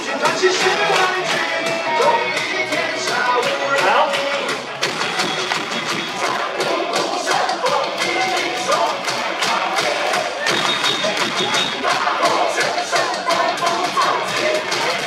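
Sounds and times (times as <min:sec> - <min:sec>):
cheer song with steady beat: 0:00.0 - 0:15.0
crowd chanting and cheering: 0:00.0 - 0:15.0.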